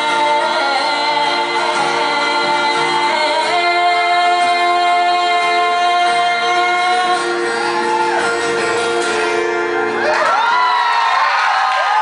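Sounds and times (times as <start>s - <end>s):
strummed acoustic guitars: 0.0s - 10.4s.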